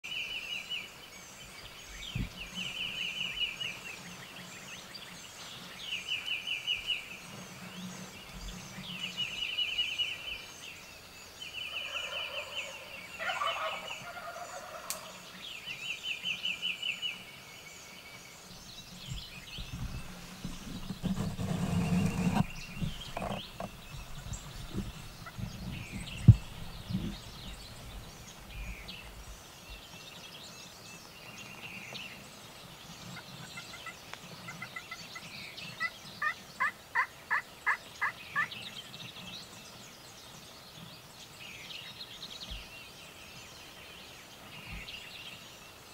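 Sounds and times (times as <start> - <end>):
songbird chirps: 0.0 - 45.9
turkeys gobbling: 11.8 - 15.1, 35.8 - 38.5.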